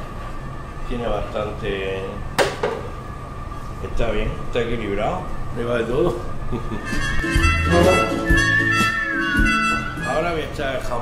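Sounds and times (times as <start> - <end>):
faint high hum: 0.0 - 11.0.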